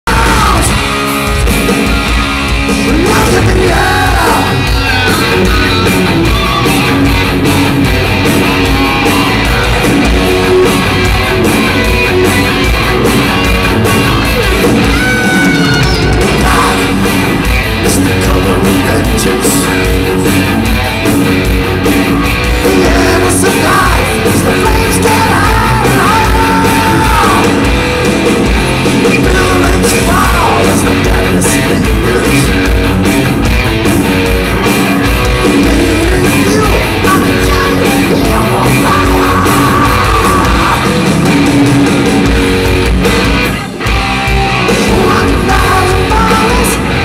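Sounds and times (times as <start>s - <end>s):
bass guitar: 0.0s - 47.0s
drums: 0.0s - 47.0s
electric guitars: 0.0s - 47.0s
heavy metal band playing live: 0.0s - 47.0s.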